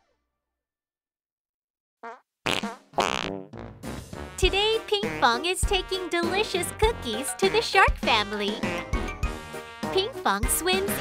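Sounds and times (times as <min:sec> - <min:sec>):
cartoon fart sound effects: 0:02.0 - 0:04.0.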